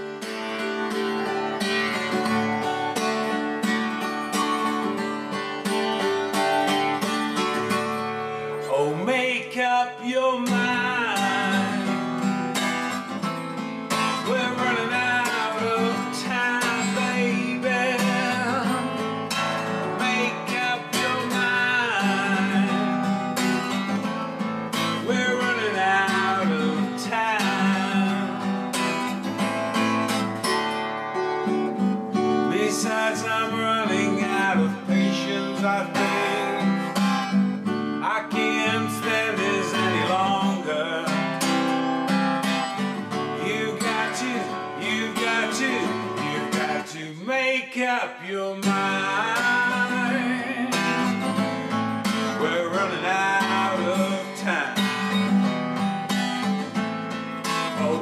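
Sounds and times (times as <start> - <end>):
strummed acoustic guitar: 0.0 - 58.0
man singing: 8.6 - 12.6, 13.9 - 24.0, 24.7 - 30.0, 32.1 - 37.4, 38.0 - 55.5, 57.4 - 58.0.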